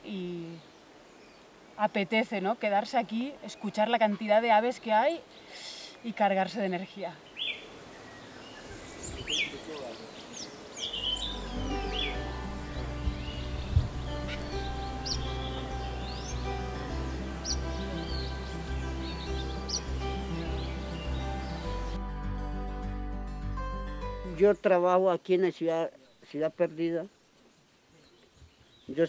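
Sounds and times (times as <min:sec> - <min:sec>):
tropical birds singing: 0:00.0 - 0:22.1, 0:23.4 - 0:29.0
background music with bass line: 0:11.1 - 0:24.6.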